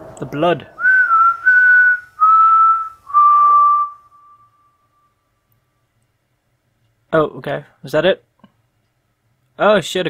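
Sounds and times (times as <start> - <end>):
person whistling: 0.8 - 5.3.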